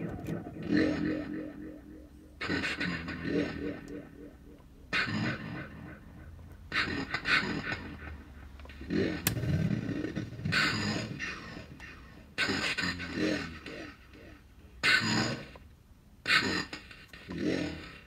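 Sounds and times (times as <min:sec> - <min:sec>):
warped vocal bursts with delay: 0:00.0 - 0:07.5.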